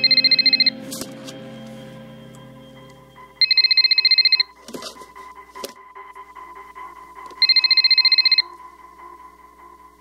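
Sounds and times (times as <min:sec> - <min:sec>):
electronic telephone ring: 0:00.0 - 0:00.8, 0:03.4 - 0:04.6, 0:07.4 - 0:08.5.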